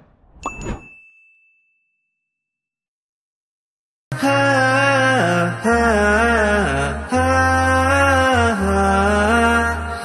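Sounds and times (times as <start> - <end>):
high chime ding: 0.4 - 2.2.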